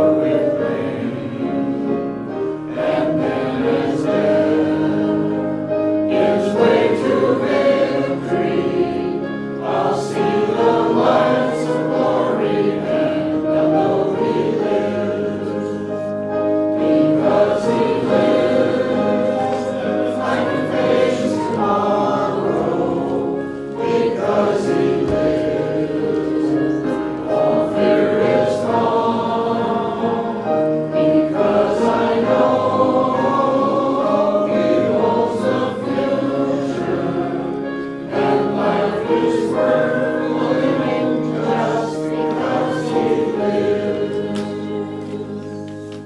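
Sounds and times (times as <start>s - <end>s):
choir singing a hymn: 0.0s - 46.0s.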